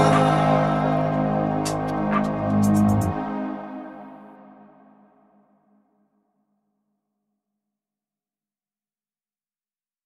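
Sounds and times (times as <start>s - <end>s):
electronic music chord: 0.0s - 5.5s.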